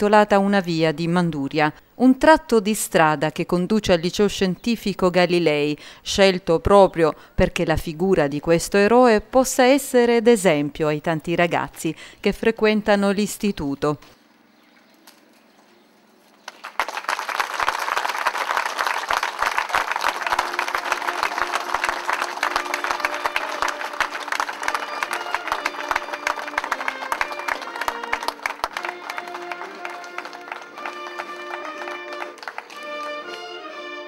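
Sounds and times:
crowd applauding: 0:16.5 - 0:34.0
melodic music: 0:20.3 - 0:34.0.

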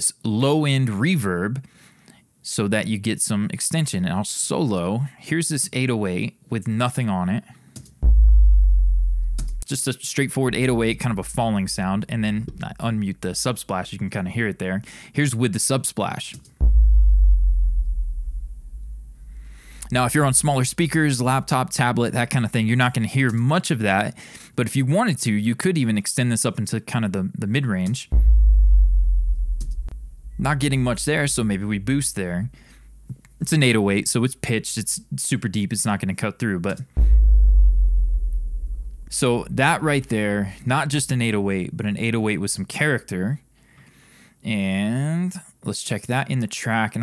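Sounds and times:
deep sub-bass note with reverb: 0:08.0 - 0:09.6, 0:10.5 - 0:12.8, 0:16.6 - 0:21.0, 0:28.1 - 0:32.1, 0:37.0 - 0:39.6.

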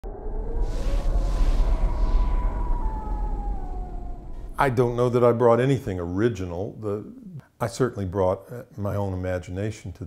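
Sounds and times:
slowly falling whine: 0:00.0 - 0:06.3
deep rumble: 0:00.0 - 0:07.4.

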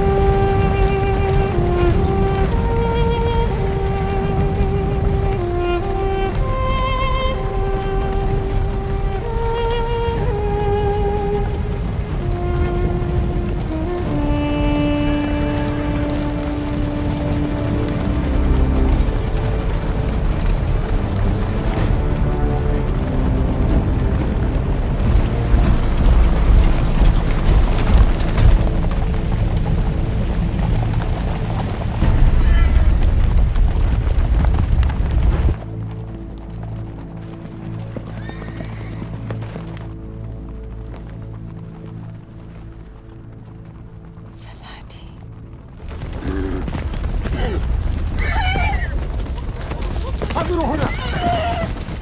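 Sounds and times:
film music score: 0:00.0 - 0:52.0
horse hooves: 0:00.0 - 0:52.0
horses neighing: 0:38.0 - 0:39.4, 0:45.9 - 0:52.0
army voices: 0:49.6 - 0:52.0.

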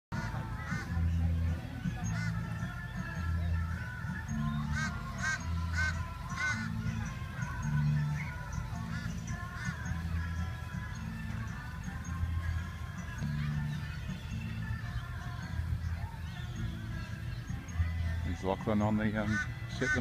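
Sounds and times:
music with held bass notes: 0:00.1 - 0:20.0
short arching calls: 0:02.0 - 0:11.2, 0:19.2 - 0:20.0.

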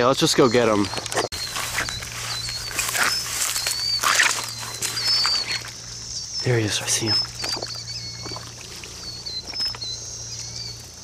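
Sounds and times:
birds chirping: 0:00.0 - 0:11.0
cicadas buzzing: 0:00.0 - 0:11.0
footsteps swishing through grass: 0:01.3 - 0:05.8.

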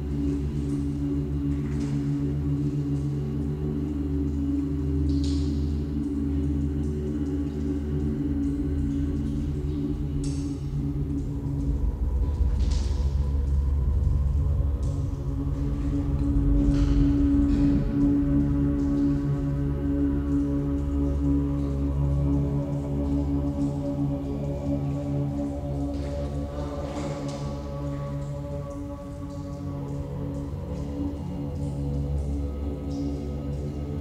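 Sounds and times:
low drone tones: 0:00.0 - 0:34.0.

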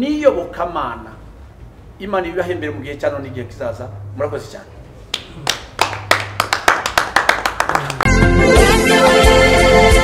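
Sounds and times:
hand claps: 0:05.1 - 0:08.2.

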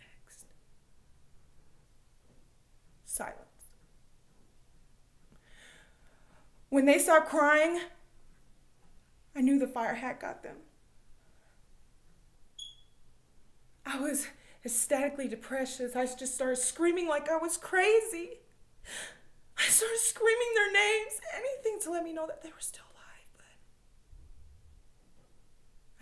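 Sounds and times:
faint room hiss: 0:00.0 - 0:26.0
short high-pitched beep: 0:12.6 - 0:13.0.

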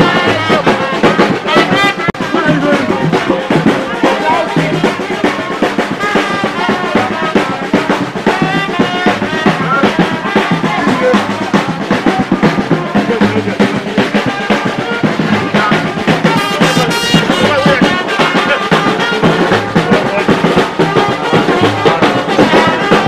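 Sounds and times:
drum kit and brass music: 0:00.0 - 0:23.0.

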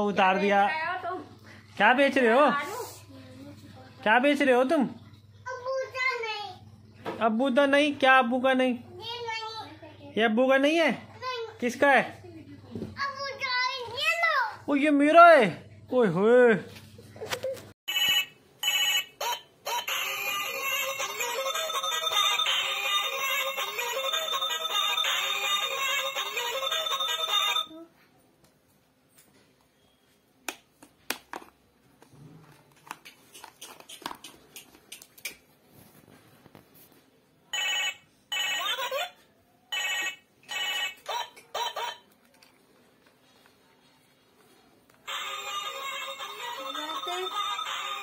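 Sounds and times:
toy telephone ringing: 0:17.9 - 0:27.8, 0:37.5 - 0:42.0, 0:45.1 - 0:48.0.

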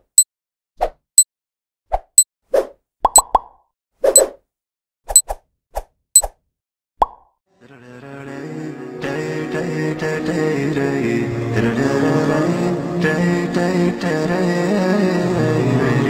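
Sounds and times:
cartoon pops and clicks: 0:03.0 - 0:03.6, 0:07.0 - 0:07.4
music: 0:07.5 - 0:16.0.

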